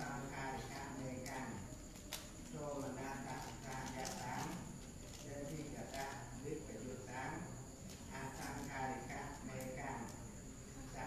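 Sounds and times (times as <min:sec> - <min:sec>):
monk reciting aloud: 0:00.0 - 0:11.0.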